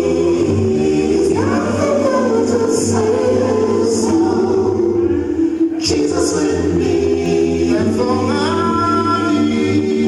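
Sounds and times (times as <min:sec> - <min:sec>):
gospel singing: 0:00.0 - 0:10.0.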